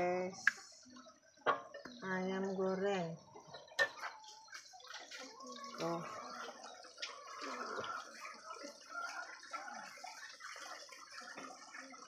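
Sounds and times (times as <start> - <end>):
chicken sizzling in a wok: 3.6 - 12.0.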